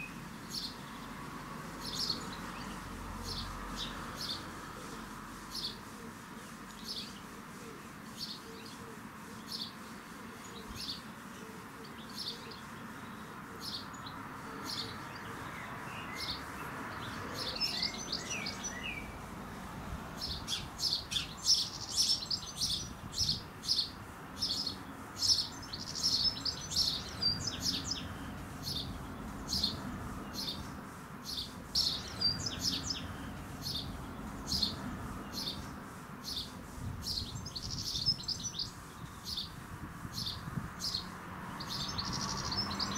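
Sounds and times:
sparrow chirping: 0:00.0 - 0:01.0, 0:01.8 - 0:05.9, 0:06.7 - 0:07.3, 0:08.1 - 0:19.2, 0:20.2 - 0:42.9.

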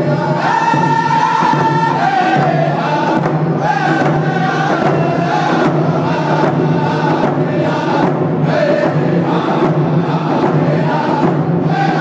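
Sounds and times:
frame drums beating: 0:00.0 - 0:12.0
men singing in unison: 0:00.0 - 0:12.0.

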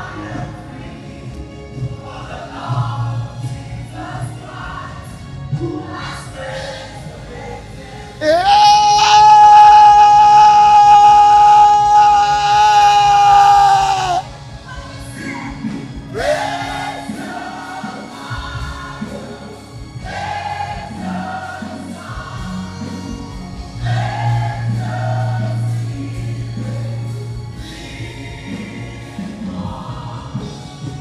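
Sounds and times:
gospel choir singing: 0:00.0 - 0:31.0
singer holding high note: 0:08.2 - 0:14.3
band accompaniment: 0:08.2 - 0:14.8.

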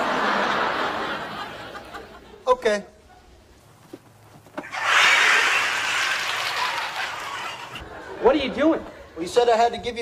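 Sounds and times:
audience laughing: 0:00.0 - 0:02.4, 0:04.7 - 0:09.2.

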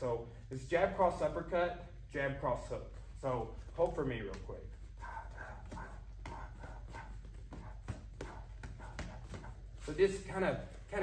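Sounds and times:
boxing gloves smacking: 0:03.6 - 0:11.0
puffs of breath: 0:04.8 - 0:09.9.

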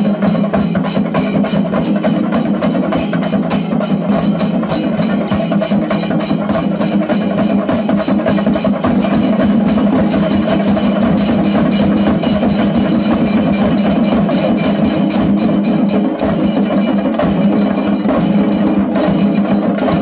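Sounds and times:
drums beaten with sticks: 0:00.0 - 0:20.0
hand cymbals clashing: 0:00.0 - 0:20.0.

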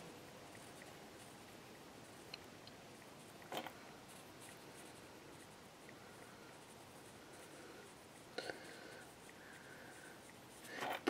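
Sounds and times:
pencil scratching on paper: 0:03.0 - 0:11.0.

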